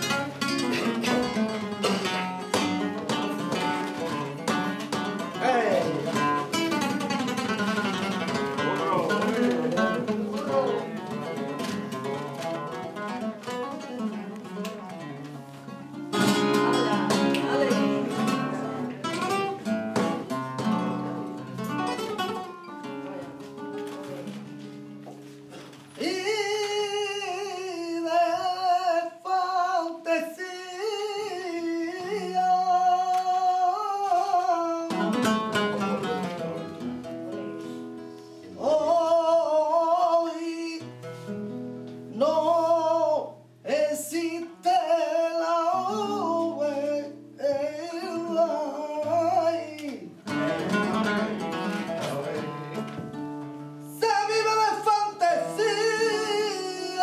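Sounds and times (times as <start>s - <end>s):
flamenco guitar: 0.0s - 57.0s
man singing flamenco: 0.0s - 57.0s.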